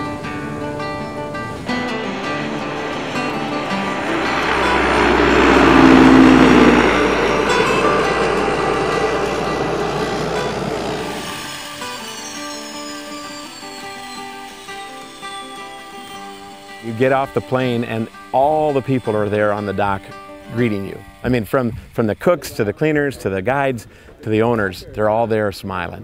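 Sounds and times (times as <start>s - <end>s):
acoustic guitar music: 0.0s - 21.3s
propeller plane engine drone: 0.0s - 21.3s.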